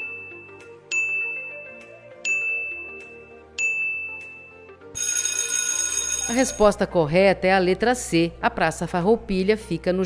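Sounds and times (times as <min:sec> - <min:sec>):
faint background music: 0:00.0 - 0:10.0
bright electronic ringing: 0:02.3 - 0:06.6.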